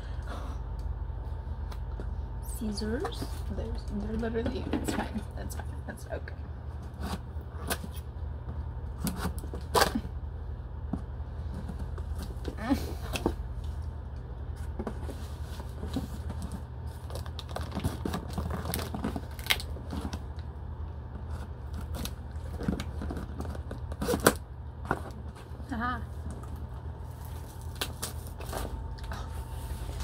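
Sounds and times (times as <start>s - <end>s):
steady low hum: 0.0s - 30.0s
tape ripping and packaging crinkling: 16.4s - 20.4s, 21.4s - 25.1s, 27.1s - 28.8s.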